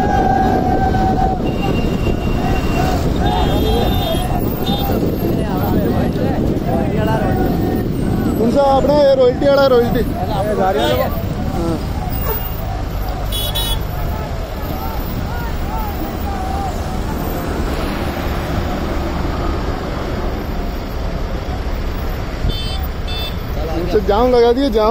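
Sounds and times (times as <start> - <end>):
traffic engine and tyre rumble: 0.0 - 24.9.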